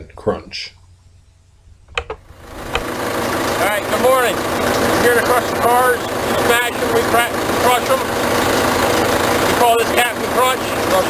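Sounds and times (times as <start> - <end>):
engine running: 0.8 - 11.0.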